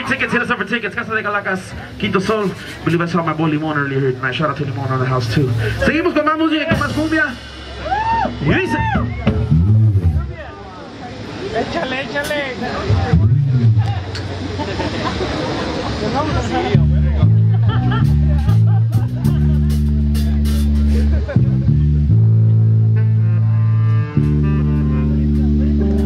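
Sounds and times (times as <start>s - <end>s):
electric bass guitar: 0.0s - 11.5s, 12.3s - 26.0s
crowd chatter: 0.0s - 26.0s
live band playing: 0.0s - 26.0s
person shouting: 7.8s - 10.0s.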